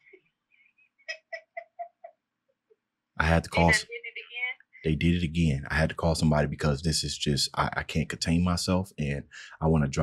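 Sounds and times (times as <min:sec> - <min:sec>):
woman laughing through phone: 0:03.6 - 0:03.8.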